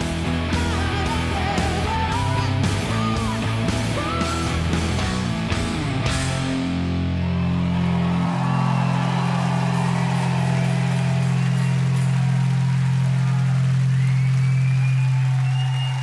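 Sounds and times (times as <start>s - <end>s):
distorted guitar and bass drone: 0.0s - 14.2s.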